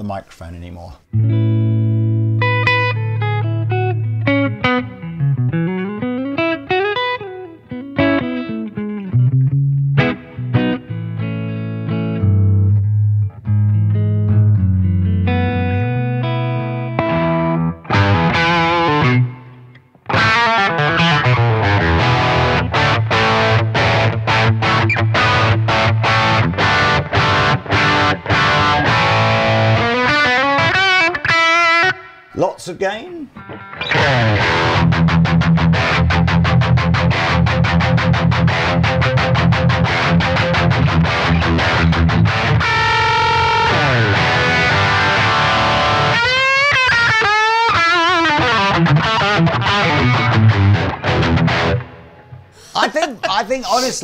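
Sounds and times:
clean electric guitar notes: 1.1s - 32.3s, 33.4s - 52.6s
distorted guitar chords strummed: 1.1s - 32.3s, 33.4s - 52.5s.

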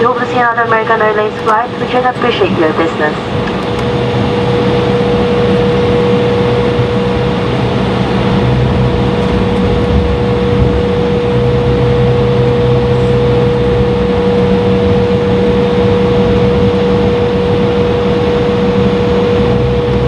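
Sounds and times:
jet engine rumble and whine: 0.0s - 20.0s
low drone: 0.0s - 20.0s.

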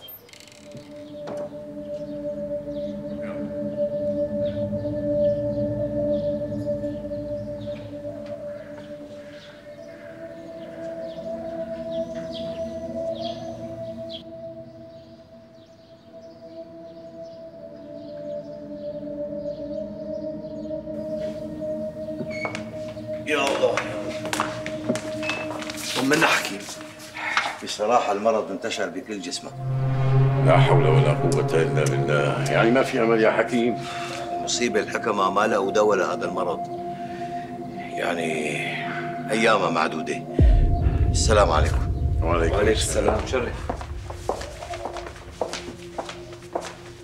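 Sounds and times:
sombre held music tones: 0.0s - 47.0s.

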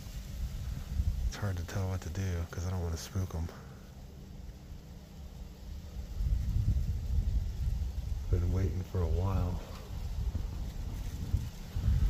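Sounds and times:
wind buffeting microphone: 0.0s - 3.3s, 3.9s - 12.0s.

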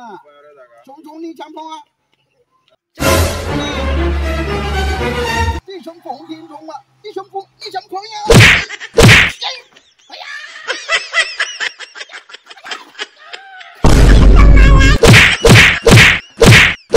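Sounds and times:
punch and hit whacks: 8.3s - 9.4s, 13.8s - 16.9s.

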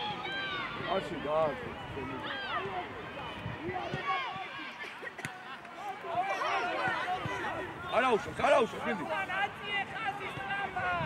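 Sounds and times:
people shouting calls: 2.1s - 11.0s.

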